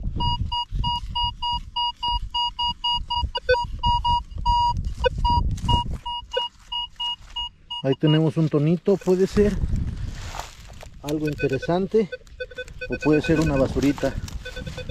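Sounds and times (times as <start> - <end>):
metal detector beeping: 0.1 - 9.6, 11.0 - 14.9.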